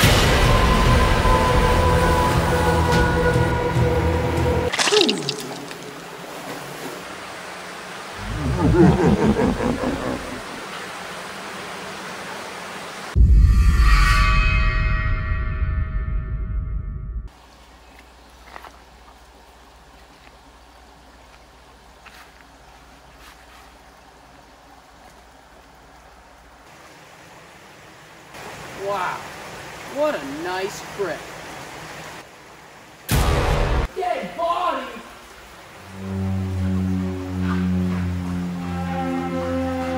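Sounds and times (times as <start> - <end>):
shallow creek rushing: 0.0 - 13.2, 17.3 - 39.9.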